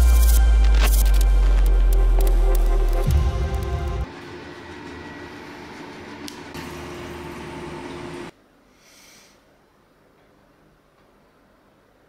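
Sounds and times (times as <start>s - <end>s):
sharp glitchy clicks: 0.0s - 4.1s
sustained drone: 0.0s - 8.3s.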